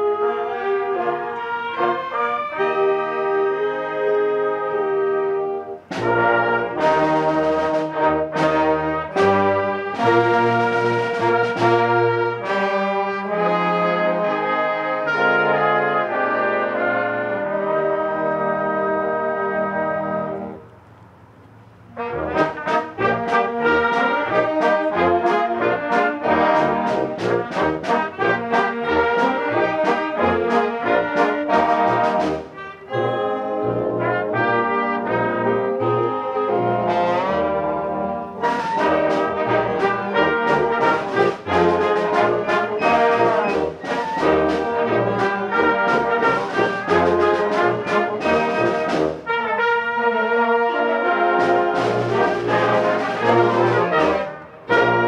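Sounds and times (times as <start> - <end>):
concert band playing: 0.0 - 20.6, 22.0 - 55.0
brass section: 0.0 - 20.8, 21.8 - 55.0.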